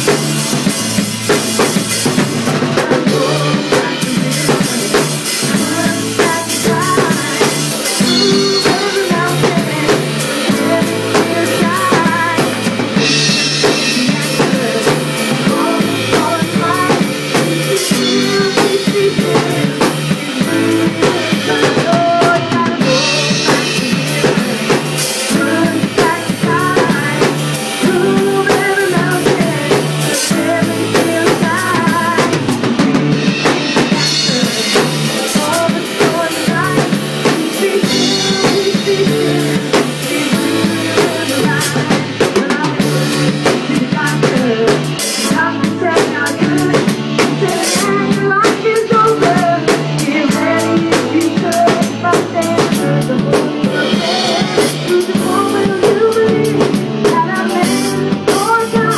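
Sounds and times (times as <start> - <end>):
acoustic drum kit playing: 0.0 - 58.9
recorded song with bass: 0.0 - 58.9.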